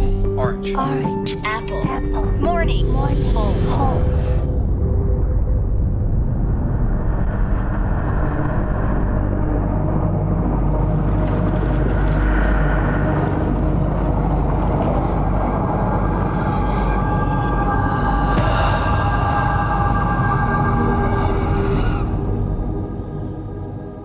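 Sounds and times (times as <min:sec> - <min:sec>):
low drone: 0:00.0 - 0:24.0
underwater rumble: 0:04.0 - 0:17.9.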